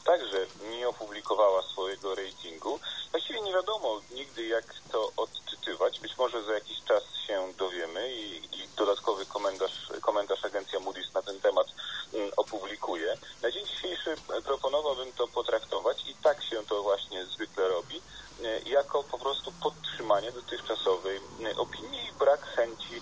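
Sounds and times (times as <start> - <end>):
faint high-pitched whine: 0.0 - 23.0
person talking: 0.0 - 23.0.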